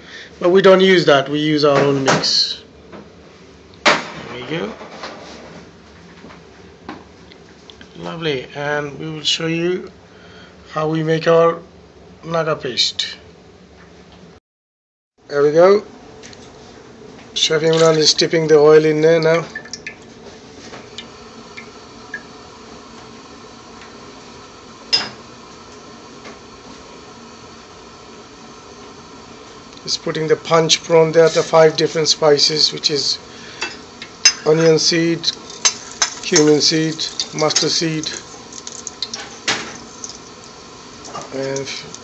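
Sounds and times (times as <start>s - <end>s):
kitchen background hum: 0.0s - 14.4s, 15.2s - 42.0s
seeds crackling in hot oil: 17.6s - 42.0s.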